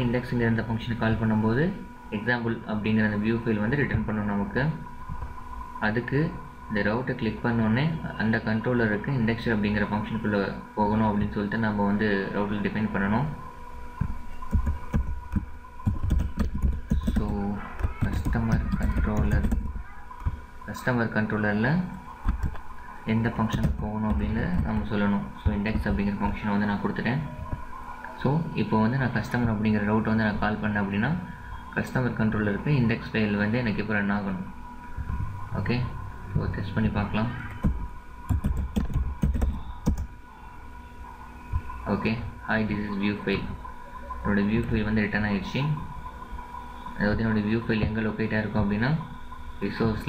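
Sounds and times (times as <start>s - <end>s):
faint steady hum: 0.0s - 50.0s
computer keyboard typing: 14.4s - 20.4s, 22.2s - 22.7s, 23.4s - 26.1s, 37.4s - 40.1s
keyboard keystrokes: 37.5s - 40.1s.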